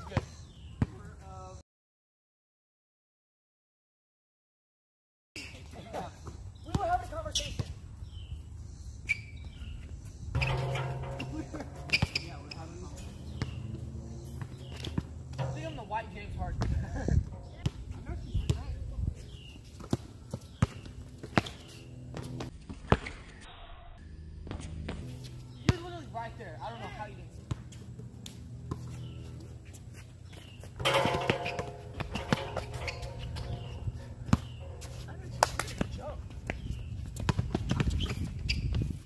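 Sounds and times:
basketball bouncing on hard court: 30.8s - 36.6s.

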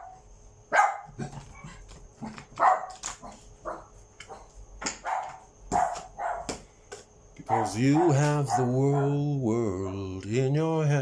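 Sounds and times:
dog barking: 0.0s - 1.2s, 2.6s - 6.6s, 7.4s - 9.2s.

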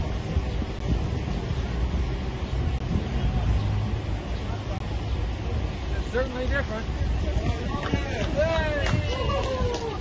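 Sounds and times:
faint voices: 0.0s - 10.0s
steady low rumble: 0.0s - 10.0s.

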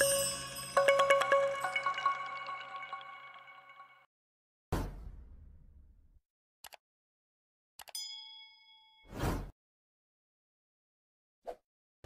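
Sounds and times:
bell-like notification ding: 0.0s - 4.0s.

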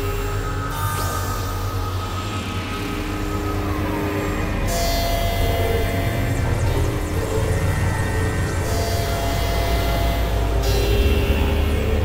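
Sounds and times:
synthesizer drone music: 0.0s - 12.0s.

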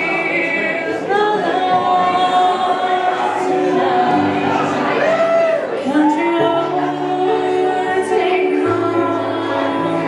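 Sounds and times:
people singing: 0.0s - 10.0s.

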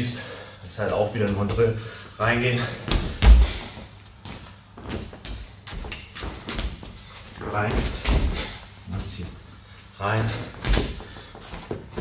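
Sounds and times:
feet thudding on training mats: 0.8s - 9.2s, 10.2s - 12.0s.

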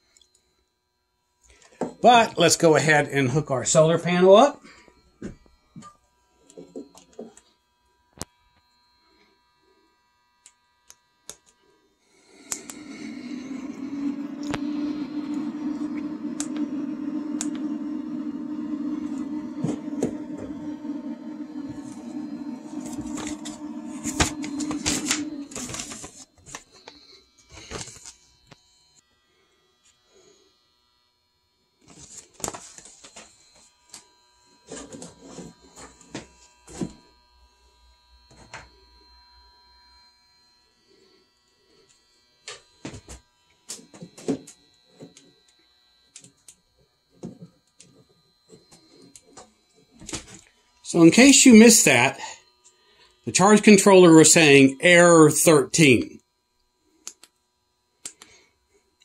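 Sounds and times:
steady low buzz: 12.2s - 26.1s, 50.7s - 56.6s.

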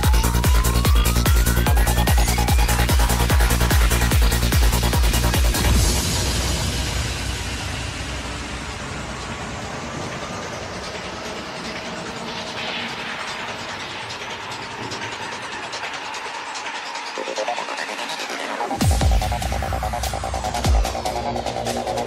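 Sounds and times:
repeating synth riff: 0.0s - 7.7s
hissing ticking synth texture: 0.0s - 22.0s
psytrance music: 0.0s - 22.0s.

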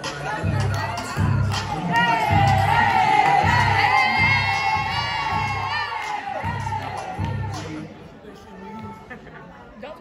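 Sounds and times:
teenagers shouting and cheering: 0.0s - 8.1s
pop music over speakers: 0.0s - 9.1s.

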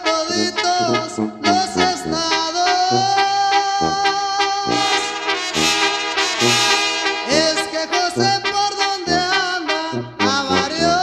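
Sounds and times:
brass band melody: 0.0s - 11.0s
bass line: 0.1s - 11.0s.

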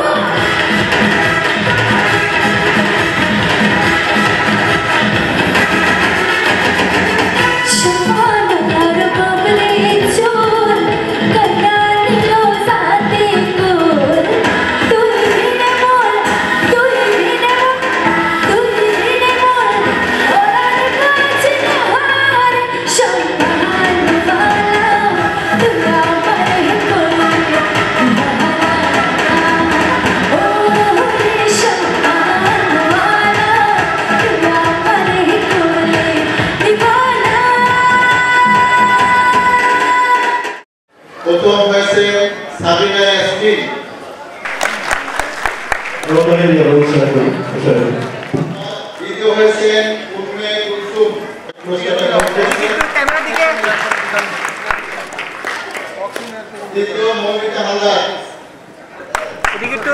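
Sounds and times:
woman singing into a microphone: 7.6s - 40.6s.

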